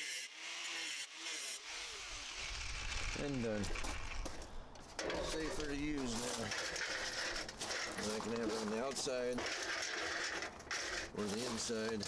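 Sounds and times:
wooden board set on gravel: 1.9 - 12.0
metal sawhorse rattling: 5.0 - 11.6.

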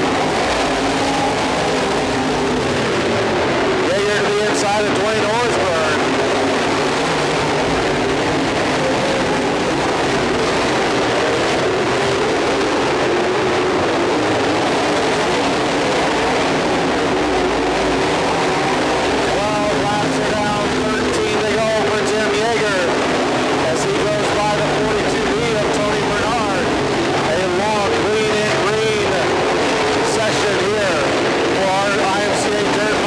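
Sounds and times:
race car engines roaring: 0.0 - 33.0.

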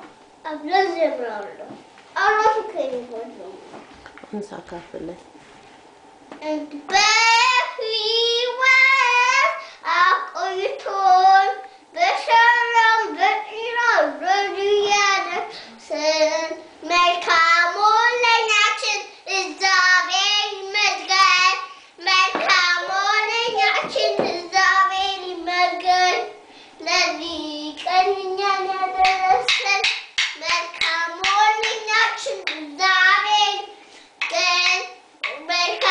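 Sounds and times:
child singing: 6.4 - 35.9.

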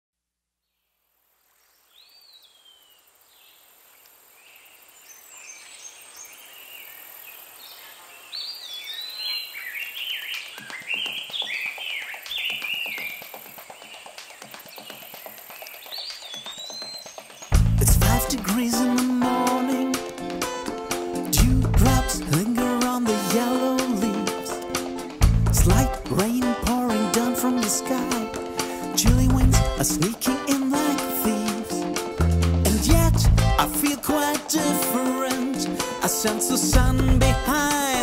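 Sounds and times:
small birds chirping and whistling: 7.7 - 17.6
loud band playing: 17.6 - 38.0.

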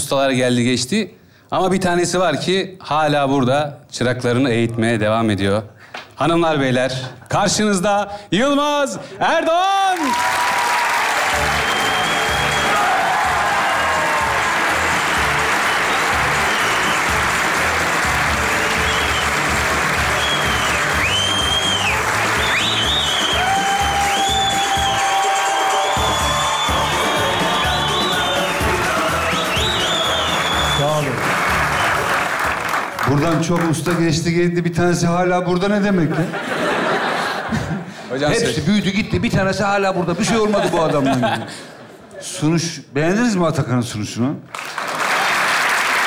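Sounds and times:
audience applauding: 9.8 - 34.1, 44.5 - 46.0
entrance music with steady beat: 11.4 - 30.8.

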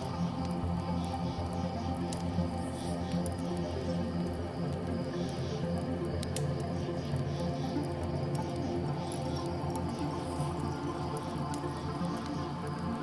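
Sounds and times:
crickets chirping: 0.0 - 13.0
wood fire crackling: 0.0 - 13.0.

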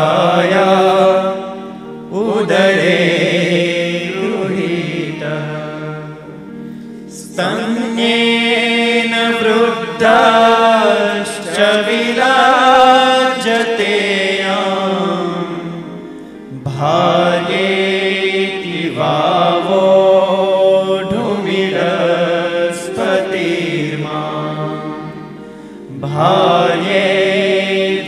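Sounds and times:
person chanting a devotional verse: 0.0 - 6.4, 7.1 - 28.0
steady held drone: 0.0 - 28.0.

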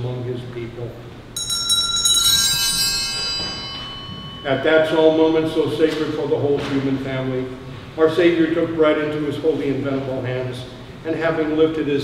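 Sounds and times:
small hand bells ringing: 1.4 - 6.0.

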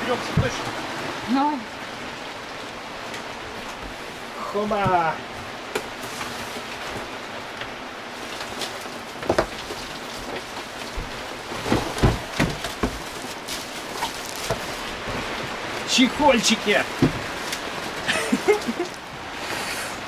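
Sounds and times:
background hiss: 0.0 - 20.0
plastic wrapping rustling: 8.1 - 19.0
cardboard box knocks and thumps: 9.2 - 10.4, 11.0 - 15.4, 17.0 - 17.5.

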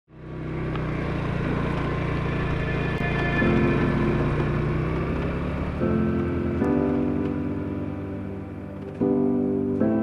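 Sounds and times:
motorcycle engine running: 0.1 - 9.7.

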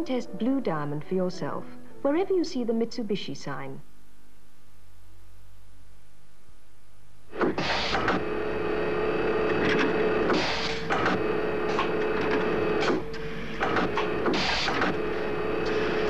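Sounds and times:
bursts of hiss: 7.4 - 8.2
robot arms mechanical whirr: 7.4 - 16.0
clunks and clicks: 7.5 - 8.3, 9.4 - 15.8.

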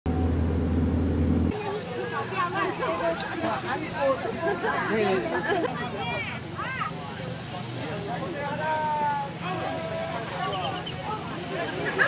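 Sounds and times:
vehicle rumble from inside: 0.0 - 2.0
voices: 1.5 - 12.0.

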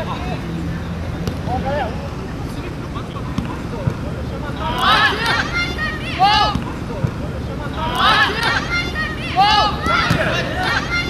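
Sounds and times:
players and onlookers shouting: 4.5 - 6.9, 7.6 - 11.0.

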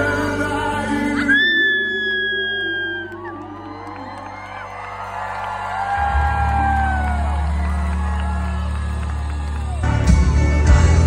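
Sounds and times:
audience cheering and whooping: 1.2 - 10.5.

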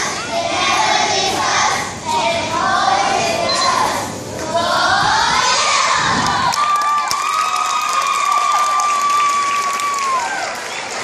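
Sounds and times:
children cheering and shouting: 5.2 - 11.0.

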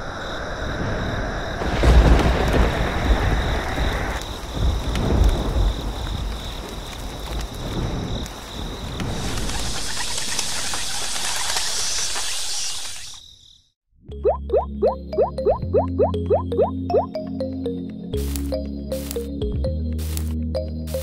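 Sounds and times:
steady rain: 0.0 - 12.3
high chirring like crickets: 0.0 - 13.8
thunder rolling: 0.6 - 10.2.

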